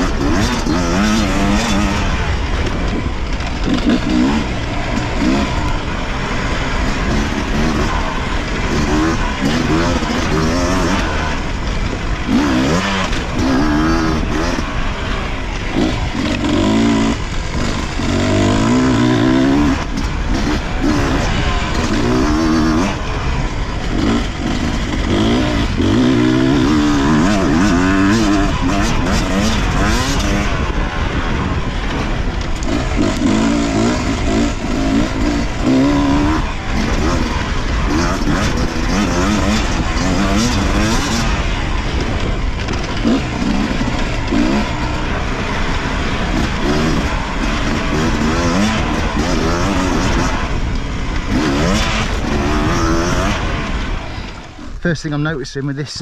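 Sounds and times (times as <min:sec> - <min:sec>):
two-stroke motorcycle engine revving: 0:00.0 - 0:56.0.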